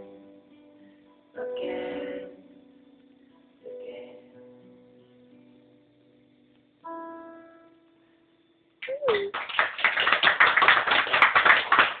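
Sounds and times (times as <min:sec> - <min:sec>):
audience clapping: 0:08.8 - 0:12.0.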